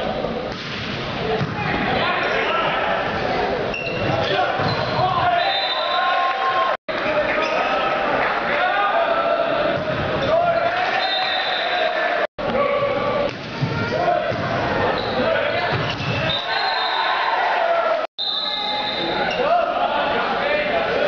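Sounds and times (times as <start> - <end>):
echoing voices: 1.1 - 16.5, 18.6 - 21.0.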